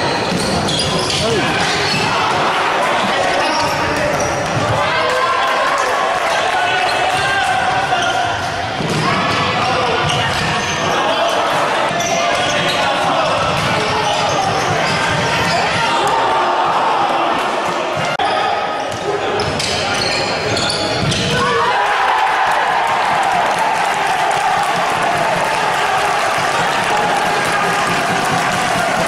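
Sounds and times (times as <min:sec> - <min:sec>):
echoing spectators' voices: 0:00.0 - 0:29.0
players shouting: 0:00.1 - 0:19.4, 0:20.5 - 0:29.0.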